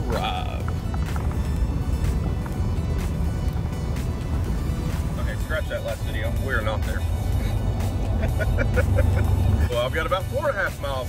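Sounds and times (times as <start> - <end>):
music with steady beat: 0.0 - 10.8
truck road and engine rumble: 0.0 - 11.0.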